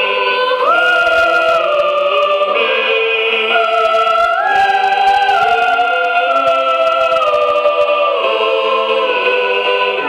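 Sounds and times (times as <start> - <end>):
mixed choir singing held chords: 0.0 - 10.0.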